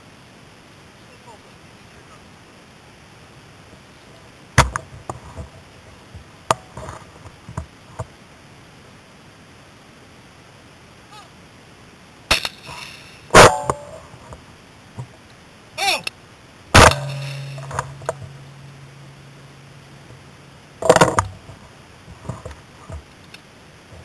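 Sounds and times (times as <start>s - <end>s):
low steady hum: 0.0s - 24.0s
shotgun shots: 12.3s - 14.0s, 16.7s - 18.6s
person shouting: 15.8s - 16.1s.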